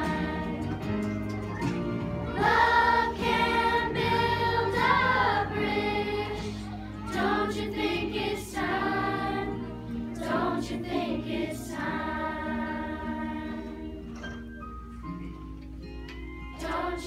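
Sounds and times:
children's choir singing: 0:00.0 - 0:14.0, 0:16.6 - 0:17.0.

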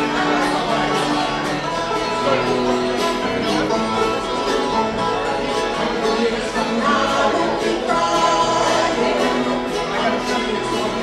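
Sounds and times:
acoustic guitar: 0:00.0 - 0:11.0
banjo: 0:00.0 - 0:11.0
man and woman singing harmony: 0:05.6 - 0:11.0.

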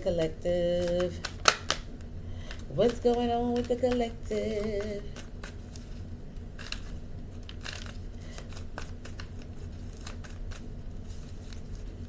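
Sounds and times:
cards being shuffled: 0:00.6 - 0:12.0.

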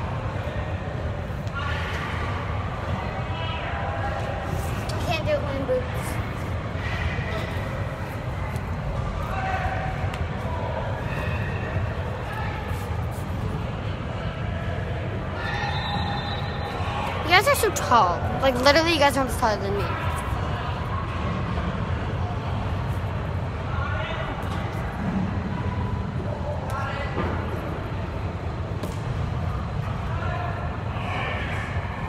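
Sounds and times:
background voices and chatter: 0:00.0 - 0:32.0.

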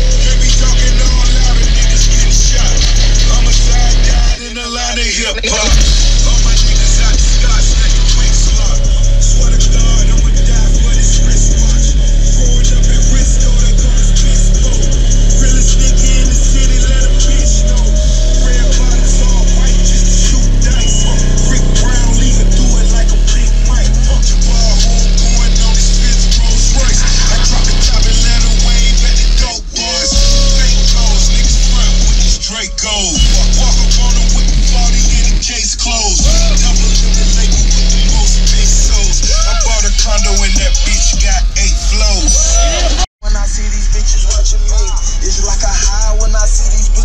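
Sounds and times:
deep bass note: 0:00.0 - 0:04.4, 0:05.7 - 0:47.0
bass-heavy music from subwoofers: 0:00.0 - 0:47.0.

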